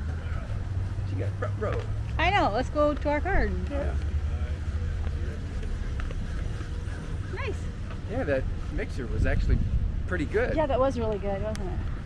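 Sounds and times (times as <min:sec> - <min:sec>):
wind rumble on microphone: 0:05.6 - 0:12.0.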